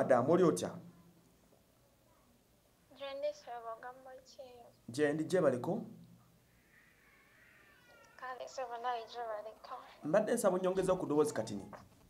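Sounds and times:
high voice through phone speaker: 8.0s - 10.0s.

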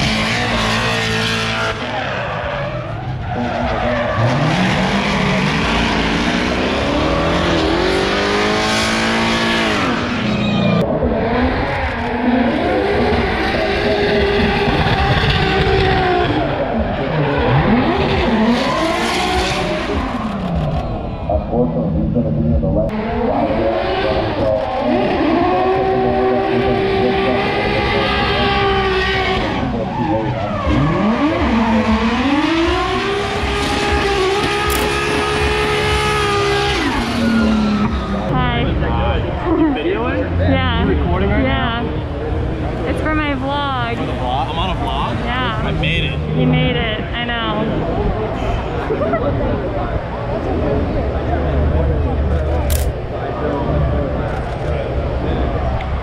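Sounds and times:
drift car engines revving: 0.0s - 56.0s.

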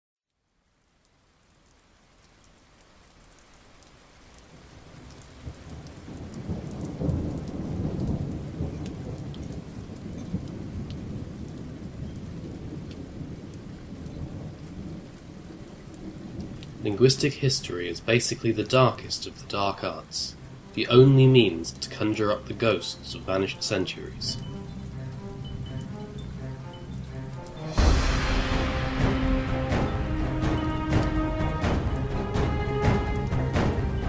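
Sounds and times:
rain: 0.3s - 34.0s
sharp ticks of raindrops: 0.3s - 34.0s
rolling thunder: 5.4s - 17.2s, 27.5s - 34.0s.

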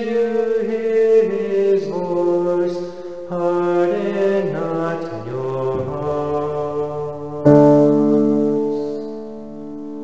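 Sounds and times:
man singing a cappella: 0.0s - 9.2s
breath: 2.8s - 3.3s.

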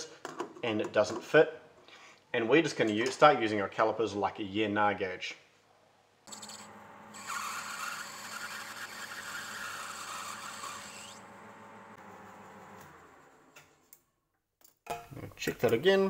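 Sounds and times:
metal lathe running hum: 6.3s - 12.0s.

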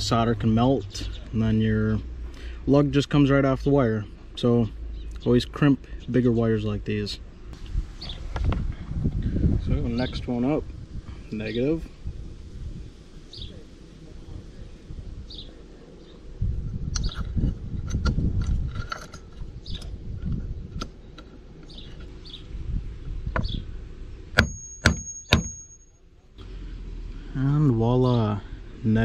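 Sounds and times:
high metallic ring: 24.4s - 26.1s.

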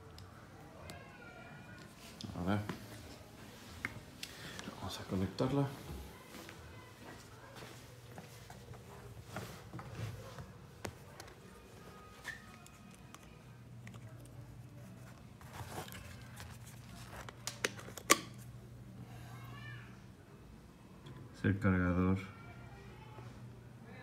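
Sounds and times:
handling noise: 8.4s - 18.5s.

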